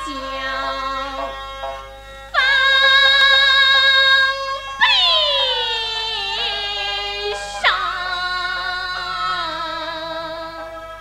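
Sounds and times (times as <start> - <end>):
opera music with sliding notes: 0.0 - 11.0.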